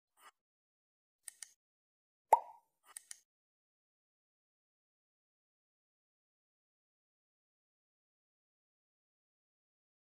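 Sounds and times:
double mouse click: 0:01.2 - 0:01.6, 0:02.4 - 0:03.2.

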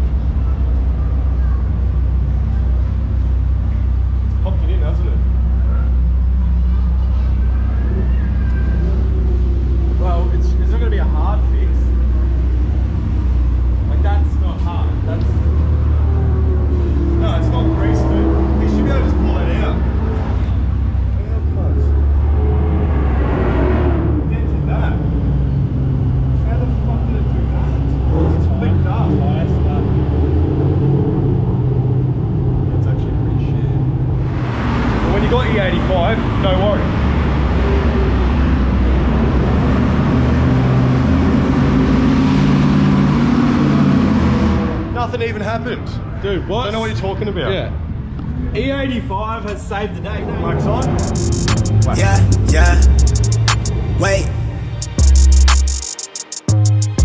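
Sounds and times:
people talking: 0:04.3 - 0:09.2, 0:09.9 - 0:12.1, 0:13.9 - 0:15.6, 0:17.1 - 0:20.4, 0:21.1 - 0:22.0, 0:24.2 - 0:25.3, 0:26.4 - 0:30.1, 0:35.0 - 0:37.0, 0:45.0 - 0:47.8, 0:48.6 - 0:56.4
car engine idling: 0:50.8 - 0:55.8.

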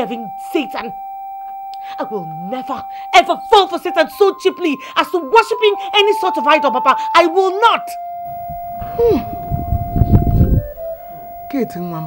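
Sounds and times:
sustained bell-like note: 0:00.0 - 0:12.0
low rumbling noise: 0:08.0 - 0:11.2
short falling vocal sound: 0:08.8 - 0:09.4.

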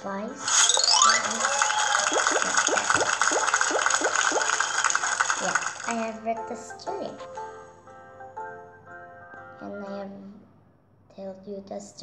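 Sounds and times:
short rising chirps: 0:00.5 - 0:02.2.

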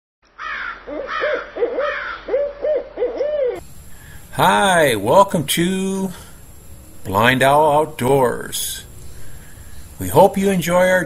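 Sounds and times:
fainter higher calls: 0:00.4 - 0:03.6
owl hooting: 0:00.4 - 0:04.2.

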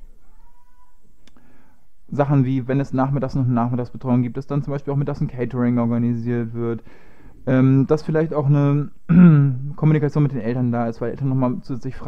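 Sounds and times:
faint high-pitched call: 0:00.0 - 0:01.2.

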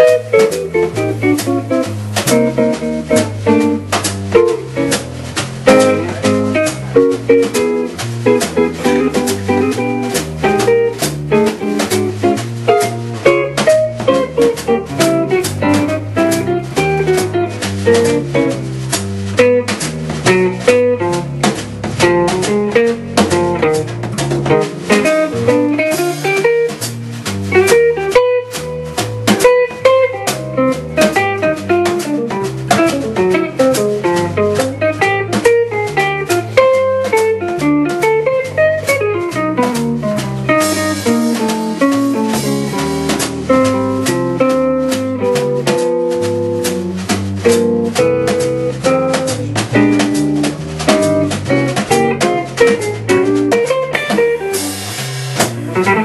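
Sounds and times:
drum kit: 0:00.0 - 0:56.0
electric bass: 0:00.0 - 0:56.0
jazz guitar: 0:00.0 - 0:56.0.

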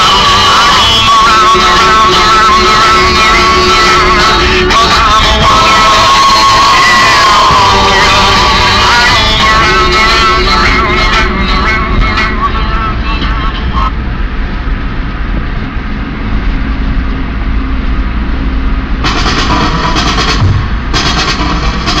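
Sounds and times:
music playing in car: 0:00.0 - 0:13.9, 0:18.8 - 0:22.0
road and engine noise: 0:00.0 - 0:22.0
music with a beat: 0:19.0 - 0:22.0.

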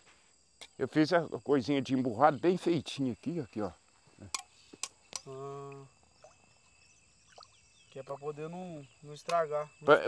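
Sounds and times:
insect drone: 0:00.0 - 0:10.0.

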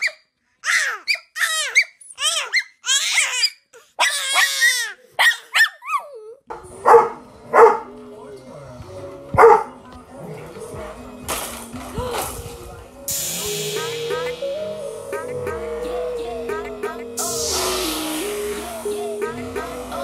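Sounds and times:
baby squealing and babbling: 0:00.0 - 0:06.4
dog barking: 0:04.0 - 0:06.0, 0:06.8 - 0:07.9, 0:09.4 - 0:09.8.

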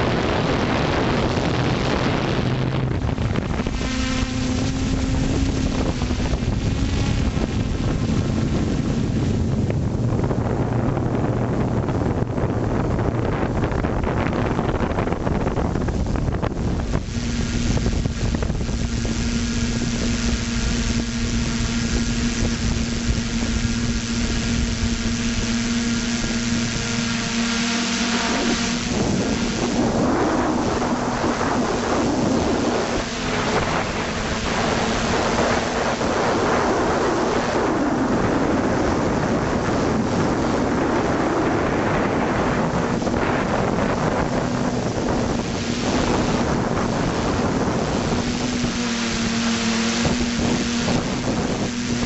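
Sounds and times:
drone motors humming: 0:00.0 - 0:52.0
wind rushing over microphone: 0:00.0 - 0:52.0.

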